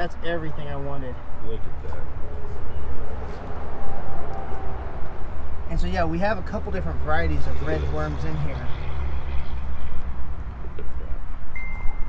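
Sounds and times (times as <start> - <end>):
wind rumbling on microphone: 8.6 - 12.0
high steady ringing tone: 11.5 - 12.0.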